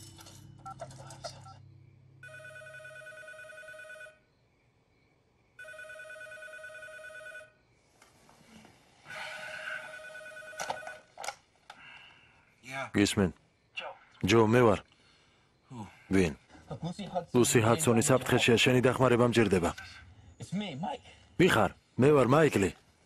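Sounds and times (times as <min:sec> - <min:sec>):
telephone ringing: 0:00.4 - 0:04.4, 0:05.6 - 0:07.7, 0:09.7 - 0:11.2.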